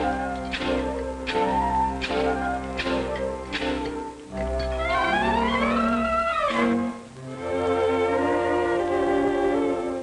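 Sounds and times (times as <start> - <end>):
orchestral strings music: 0.0 - 10.0.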